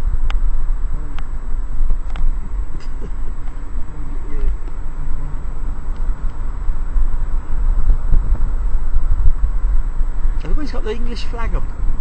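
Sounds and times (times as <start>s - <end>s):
car engine low rumble: 0.0s - 12.0s
road and wind noise: 0.0s - 12.0s.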